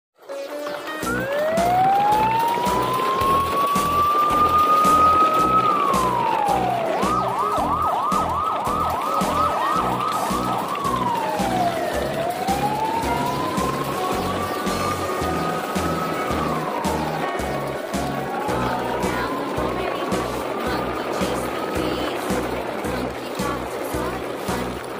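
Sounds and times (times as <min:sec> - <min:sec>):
background music with steady beat: 0:00.5 - 0:24.9
siren wailing and yelping: 0:01.0 - 0:20.9.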